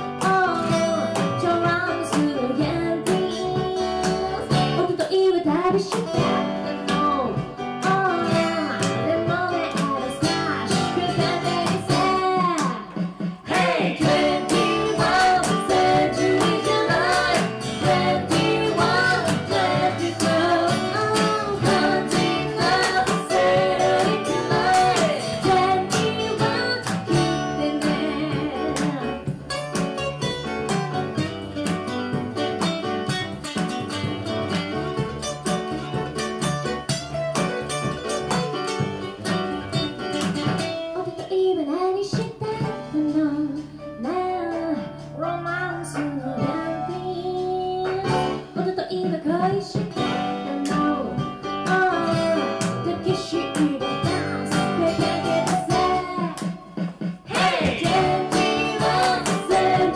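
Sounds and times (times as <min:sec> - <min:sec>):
woman singing into microphone: 0:00.0 - 0:13.0, 0:14.0 - 0:29.2, 0:40.9 - 0:59.9
acoustic guitar strummed: 0:13.5 - 0:41.0, 0:51.2 - 0:59.9.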